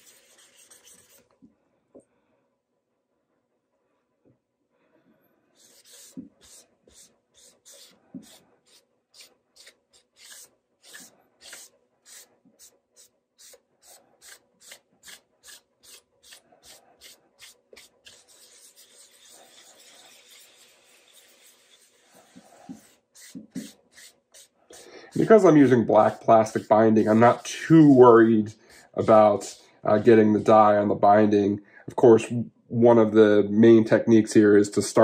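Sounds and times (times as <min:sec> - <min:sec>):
paper towel rubbing on wood: 0:05.6 - 0:30.8.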